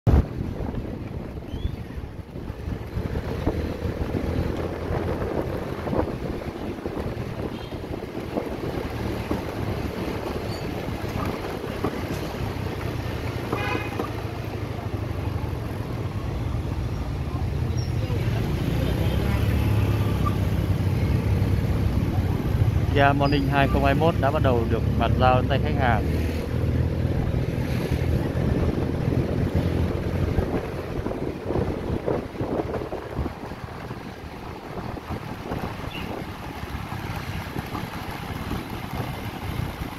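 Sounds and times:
wind on microphone: 0:00.1 - 0:13.9, 0:26.1 - 0:39.9
car and motorbike engines rumbling: 0:00.1 - 0:39.9.

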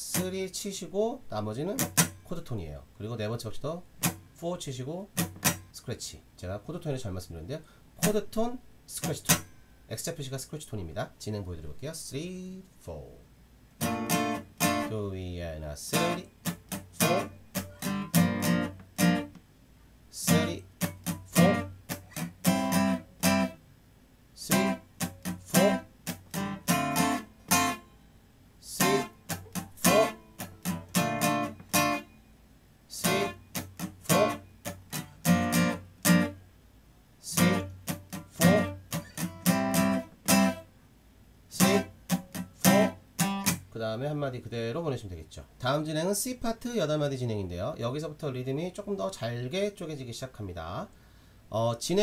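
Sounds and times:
acoustic guitar strumming: 0:01.7 - 0:02.3, 0:04.0 - 0:04.4, 0:05.1 - 0:05.8, 0:09.0 - 0:09.9, 0:13.8 - 0:14.9, 0:15.8 - 0:19.4, 0:20.1 - 0:23.6, 0:24.4 - 0:36.4, 0:37.2 - 0:40.7, 0:41.5 - 0:43.7.

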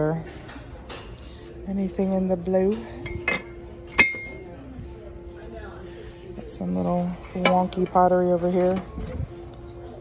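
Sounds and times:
ceramic clink ringing: 0:03.0 - 0:04.5.

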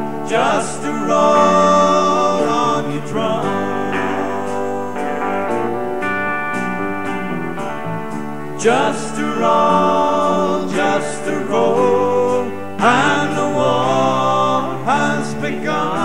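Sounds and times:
electric folk-rock band playing: 0:00.0 - 0:16.0.

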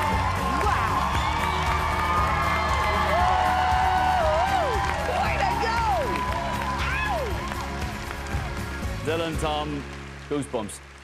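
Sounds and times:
audience cheering and whooping: 0:00.0 - 0:08.6
scattered applause: 0:00.0 - 0:11.0.

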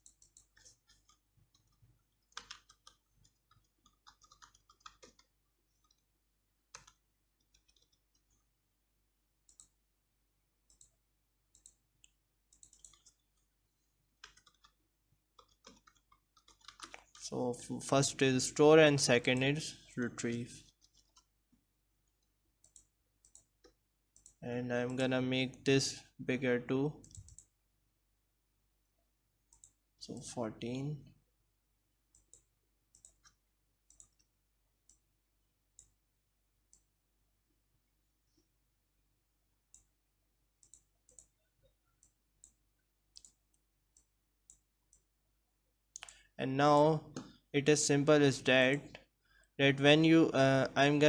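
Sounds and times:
computer mouse clicks: 0:00.0 - 0:06.1, 0:09.4 - 0:09.8, 0:10.7 - 0:13.4, 0:15.4 - 0:17.2, 0:22.1 - 0:25.0, 0:27.0 - 0:27.6, 0:29.5 - 0:30.3, 0:32.1 - 0:35.1, 0:35.8 - 0:36.0, 0:39.7 - 0:40.0, 0:40.6 - 0:41.4, 0:42.0 - 0:45.1, 0:45.9 - 0:46.3
mouse clicks: 0:10.7 - 0:13.2, 0:27.0 - 0:27.5, 0:32.1 - 0:34.3, 0:40.6 - 0:41.3, 0:43.2 - 0:45.1, 0:45.9 - 0:46.2.

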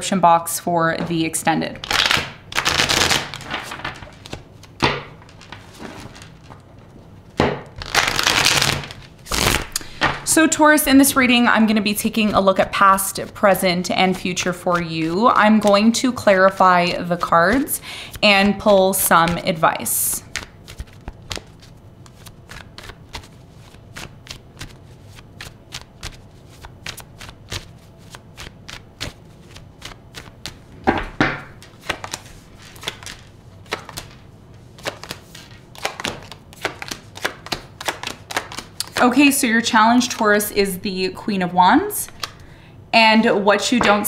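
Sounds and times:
cards being shuffled: 0:01.8 - 0:10.3, 0:20.2 - 0:39.1, 0:42.1 - 0:42.5.

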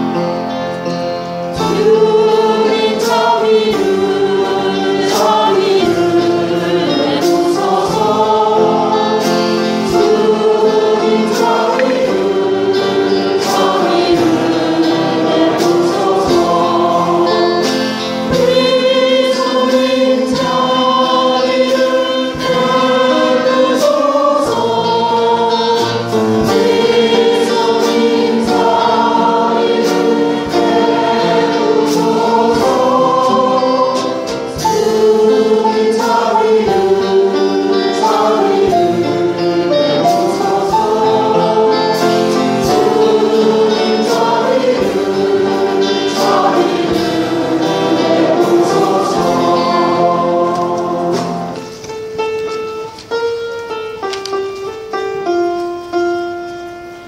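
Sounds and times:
choir singing: 0:00.0 - 0:51.9
instrumental accompaniment: 0:00.0 - 0:57.0.

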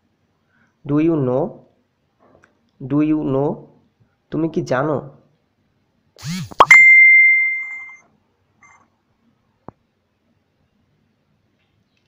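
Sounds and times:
bell-like ding: 0:06.6 - 0:08.0.

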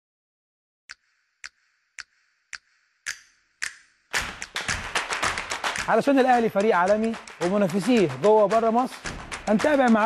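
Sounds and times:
sharp percussive hits: 0:01.4 - 0:10.0
crowd noise with clapping: 0:04.5 - 0:10.0.

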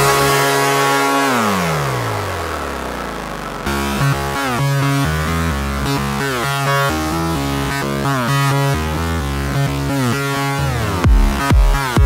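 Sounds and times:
electronic dance music: 0:00.0 - 0:12.0
synthesizer pitch drop: 0:00.0 - 0:12.0.

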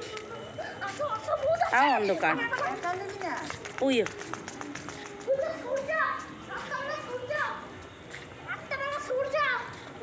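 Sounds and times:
children calling and shouting: 0:00.0 - 0:10.0.

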